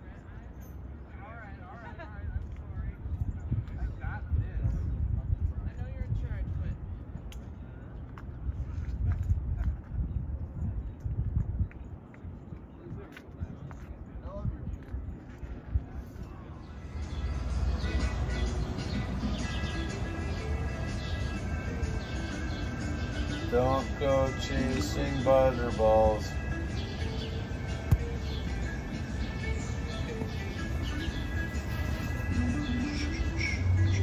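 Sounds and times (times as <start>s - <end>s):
wind buffeting microphone: 2.3s - 24.2s
music: 16.2s - 34.0s.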